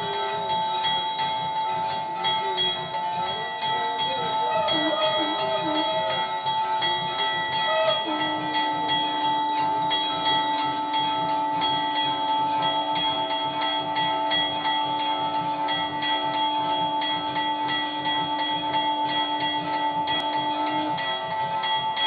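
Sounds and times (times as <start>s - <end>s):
temple bells ringing rapidly: 0.0s - 22.0s.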